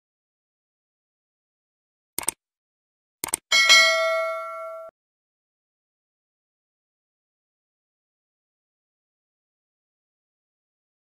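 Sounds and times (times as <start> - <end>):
mouse double clicks: 2.2 - 2.4, 3.2 - 3.4
bright bell ding: 3.5 - 4.9.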